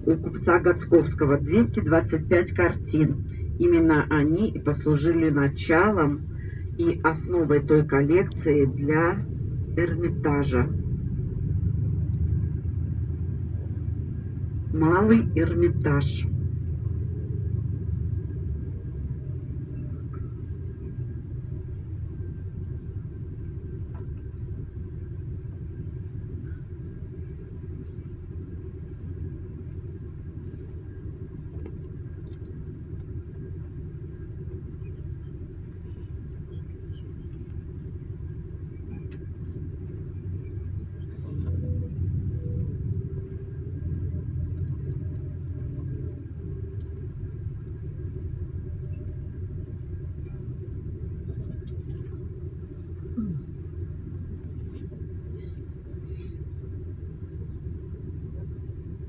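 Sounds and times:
bus engine and tyres rumbling: 0.0s - 59.0s.

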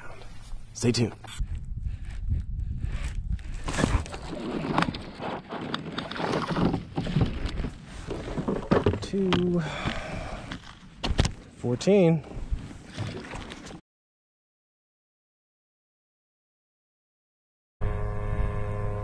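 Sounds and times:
rustling and knocks: 3.7s - 9.4s.

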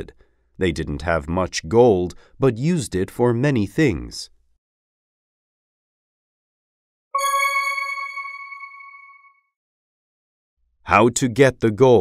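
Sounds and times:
bell-like chime ringing: 7.2s - 9.4s.

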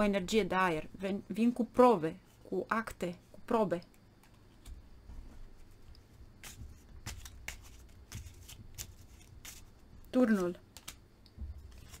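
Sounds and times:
cards being shuffled: 5.4s - 11.0s, 11.6s - 12.0s.

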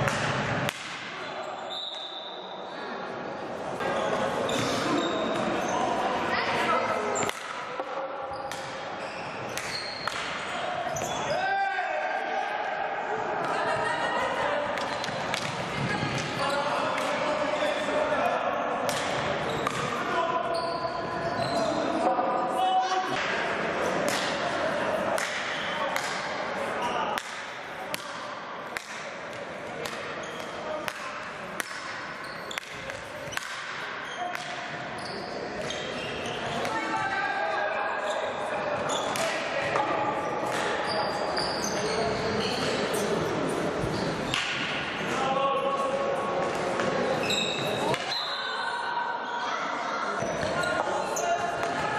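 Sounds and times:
hockey sticks clacking on ball: 14.8s - 16.3s, 25.2s - 26.3s, 27.2s - 34.7s, 44.2s - 44.8s.

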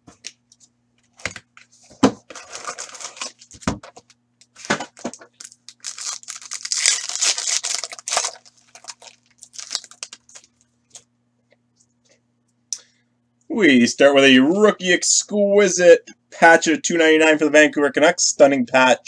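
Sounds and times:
foil wrapper tearing and crinkling: 2.4s - 3.5s, 5.0s - 10.6s.

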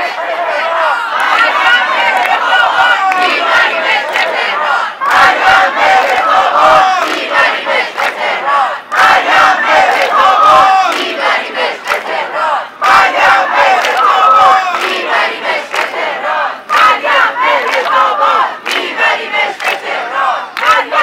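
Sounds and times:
crowd shouting slogans: 0.0s - 21.0s
hand clapping: 7.9s - 8.3s, 10.9s - 11.2s, 11.8s - 12.2s, 13.7s - 15.1s, 15.7s - 16.0s, 17.6s - 18.0s, 18.6s - 19.0s, 19.6s - 19.9s.

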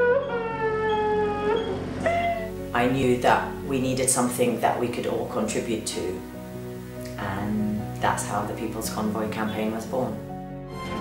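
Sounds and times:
crying wail: 0.0s - 2.5s.

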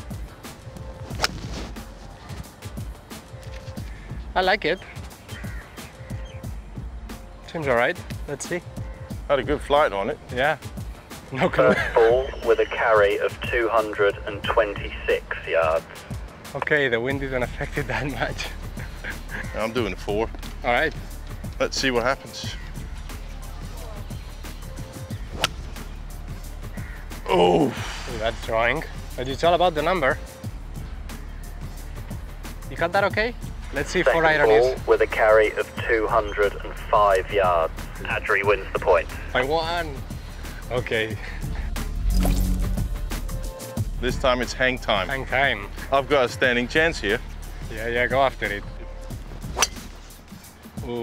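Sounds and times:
background music with beat: 0.0s - 51.0s
golf club striking ball: 25.4s - 25.7s, 49.5s - 50.0s.

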